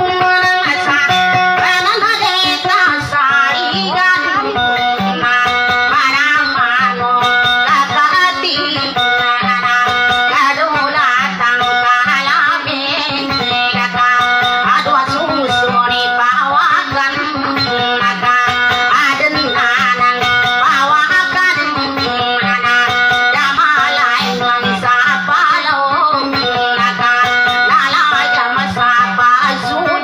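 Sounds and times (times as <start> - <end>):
plucked boat lute: 0.0 - 30.0
woman singing: 0.0 - 30.0.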